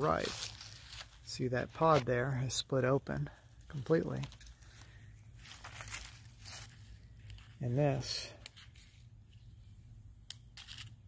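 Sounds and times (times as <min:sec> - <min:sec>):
dry husk crackling: 0:00.0 - 0:02.2.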